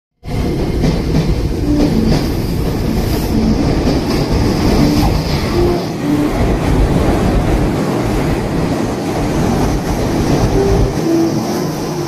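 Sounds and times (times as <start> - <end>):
train wheels rumbling on rails: 0.2 - 12.0.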